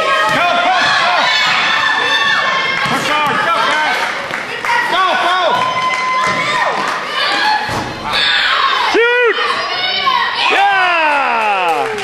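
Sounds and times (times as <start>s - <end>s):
children shouting: 0.0s - 4.0s, 5.8s - 12.0s.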